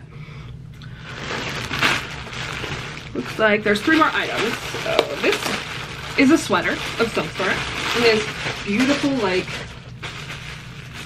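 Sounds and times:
plastic bag crinkling: 0:00.9 - 0:11.0.

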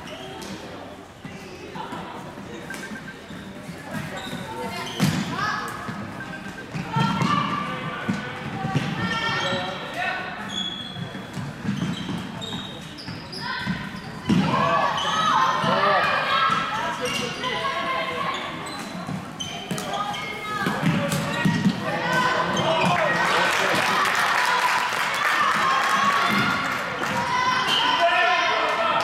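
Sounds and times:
shoes squeaking on court floor: 0:00.0 - 0:23.2.

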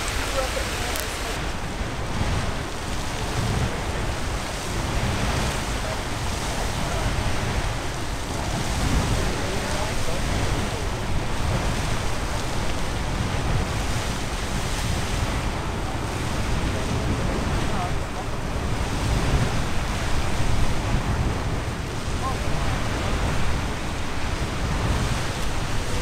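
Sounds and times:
geyser water rushing: 0:00.0 - 0:26.0
wind rumble on microphone: 0:00.0 - 0:26.0.

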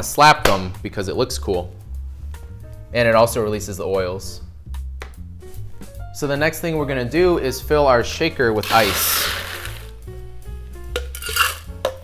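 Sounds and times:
background music: 0:00.0 - 0:12.0
crushed ice rattling in metal tin: 0:08.6 - 0:09.9, 0:11.2 - 0:11.7.

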